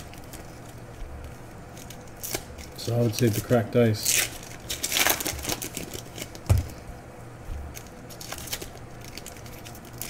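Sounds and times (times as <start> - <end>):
foil wrapper crinkling: 0.0 - 6.9, 7.6 - 10.0.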